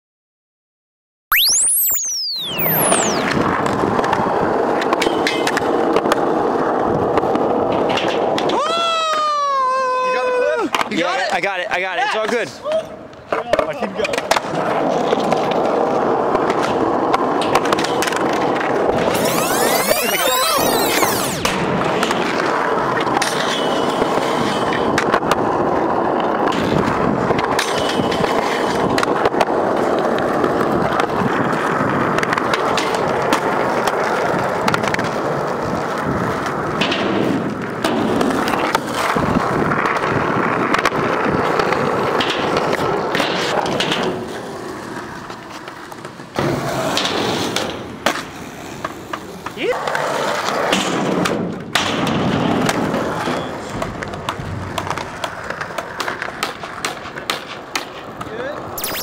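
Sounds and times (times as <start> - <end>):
skateboard wheels rolling on concrete: 3.2 - 19.8, 20.6 - 58.8.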